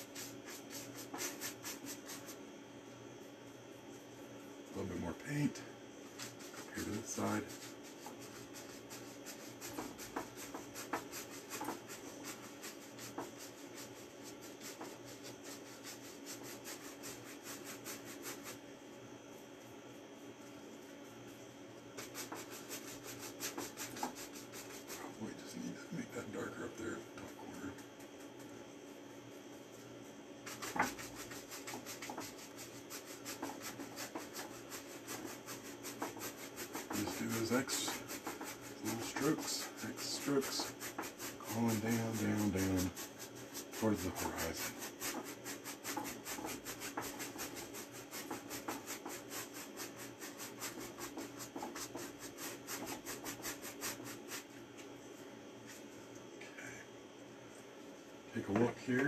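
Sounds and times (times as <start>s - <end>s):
brush scrubbing paint on canvas: 0.0s - 2.5s, 3.2s - 56.0s.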